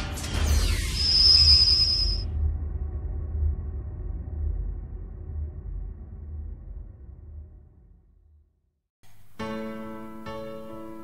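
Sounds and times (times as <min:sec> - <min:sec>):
high ringing tone: 0:01.0 - 0:02.3
deep pulsing bass rumble: 0:02.2 - 0:08.4.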